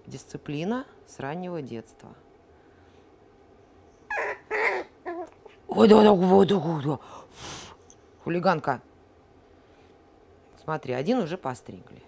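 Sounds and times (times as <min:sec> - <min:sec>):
puppy whimpering: 0:04.1 - 0:05.6.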